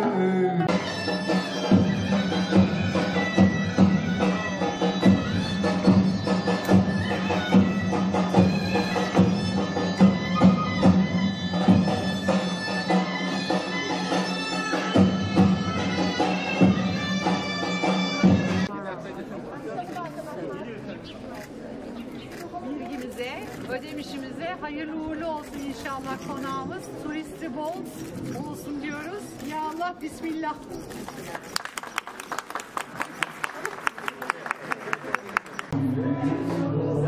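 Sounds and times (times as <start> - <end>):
reed pipe melody with drone: 0.0 - 18.7
crowd chatter: 0.0 - 37.0
drum beating: 0.7 - 18.7.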